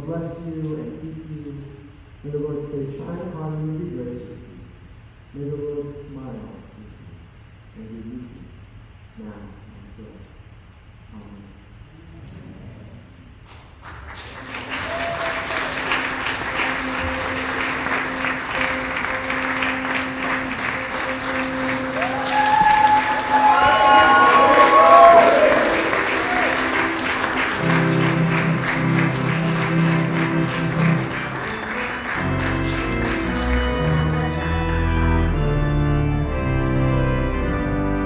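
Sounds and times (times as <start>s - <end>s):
crowd applauding: 13.5s - 35.8s
cheers and whoops: 14.6s - 16.0s, 21.9s - 27.1s
organ playing held chords: 15.3s - 38.0s.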